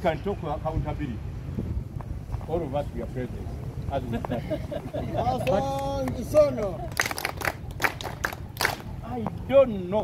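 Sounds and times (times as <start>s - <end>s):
people clapping: 5.3s - 8.9s.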